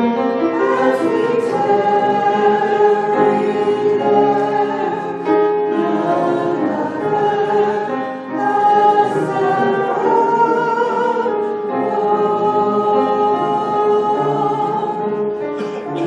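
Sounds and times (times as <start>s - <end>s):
women singing together: 0.5s - 16.0s.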